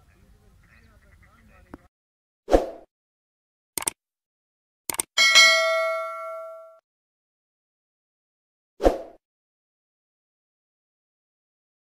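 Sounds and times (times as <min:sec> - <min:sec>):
double mouse click: 0:03.8 - 0:04.0, 0:04.9 - 0:05.1
bright bell ding: 0:05.2 - 0:06.8.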